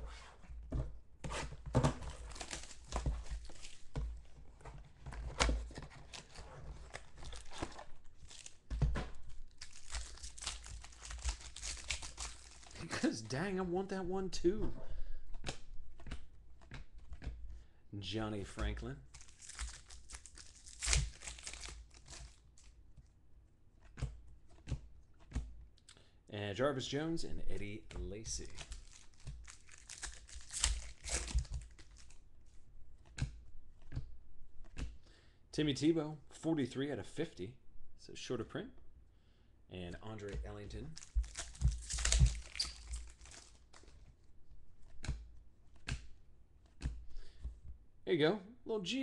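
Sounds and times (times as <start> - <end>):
plastic wrapper crinkling: 2.0 - 13.1, 19.1 - 22.8, 28.2 - 32.2, 40.6 - 44.1
trading cards being shuffled: 4.6 - 12.9, 40.3 - 44.1.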